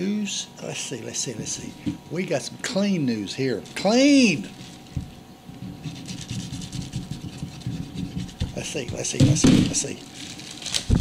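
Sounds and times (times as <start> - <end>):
knife knocking on plastic: 5.0 - 9.8
knife sawing rasp: 5.8 - 9.2.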